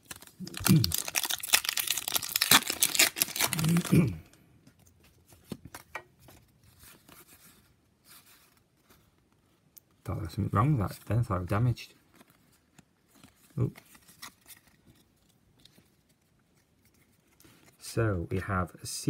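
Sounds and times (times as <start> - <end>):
foil wrapper tearing and crinkling: 0.0 - 4.2
cards rustling and clicking: 4.6 - 10.0, 12.0 - 17.8.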